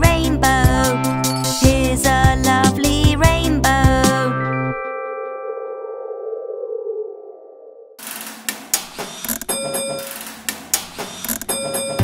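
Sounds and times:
children's song: 0:00.0 - 0:04.9.

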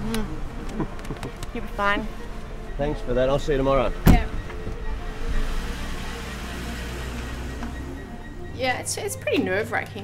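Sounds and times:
car pulling away: 0:00.0 - 0:10.0
quiet background music: 0:00.0 - 0:10.0.

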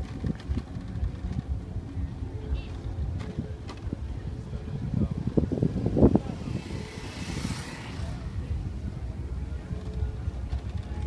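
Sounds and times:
motorbike passing: 0:00.0 - 0:11.0
wind rumble on microphone: 0:00.0 - 0:11.0.

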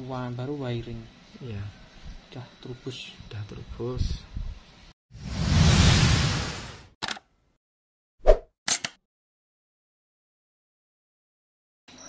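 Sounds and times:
sharp clicks: 0:07.0 - 0:07.3, 0:08.7 - 0:09.0.

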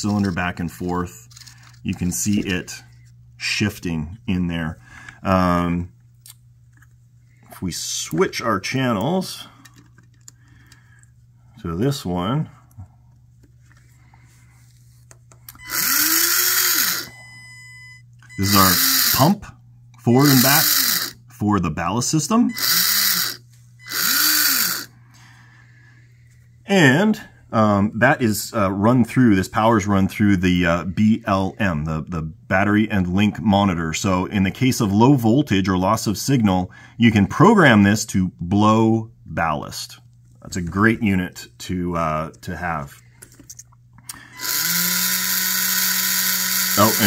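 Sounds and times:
small electric pump motor whirring: 0:15.5 - 0:19.4, 0:20.1 - 0:21.2, 0:22.5 - 0:24.9, 0:44.3 - 0:47.0.

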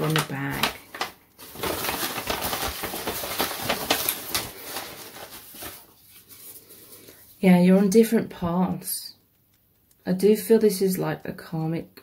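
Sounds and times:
paper slips rustling in cloth bag: 0:00.0 - 0:06.7.

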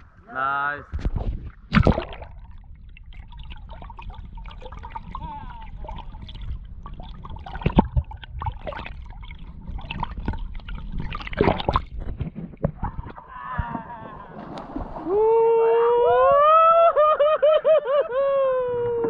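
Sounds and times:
muffled underwater water movement: 0:00.0 - 0:16.9
bubbling: 0:01.1 - 0:15.5
splash into water: 0:01.6 - 0:02.6, 0:11.0 - 0:12.0.

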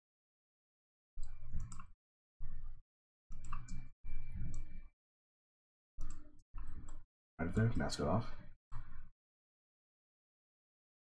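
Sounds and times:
computer mouse clicking: 0:01.2 - 0:01.9, 0:03.3 - 0:04.8, 0:06.0 - 0:07.0.

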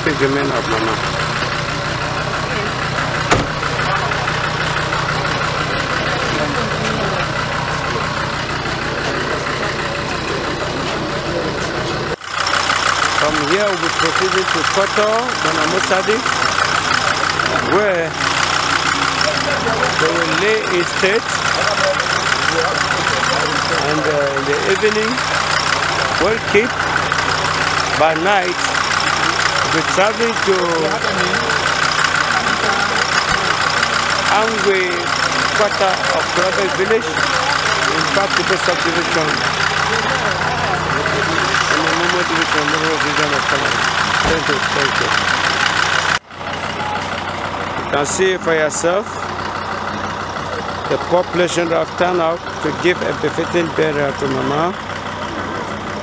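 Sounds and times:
faint voices: 0:00.0 - 0:56.0
vehicle engine idling: 0:00.0 - 0:56.0.

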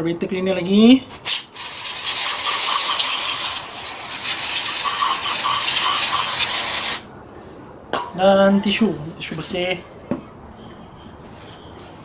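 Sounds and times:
aerosol spray hiss: 0:01.3 - 0:07.0.

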